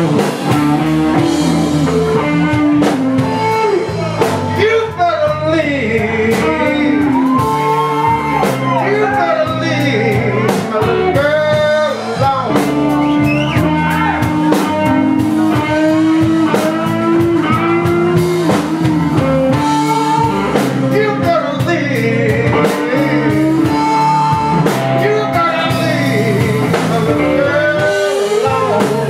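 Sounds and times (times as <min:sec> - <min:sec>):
bass guitar: 0:00.0 - 0:29.0
drum kit: 0:00.0 - 0:29.0
electric guitar: 0:00.0 - 0:29.0
man singing into a microphone: 0:03.4 - 0:29.0.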